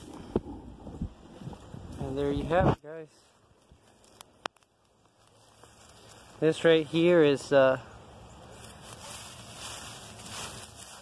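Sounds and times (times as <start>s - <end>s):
hand rustling through dry mulch: 1.5s - 11.0s.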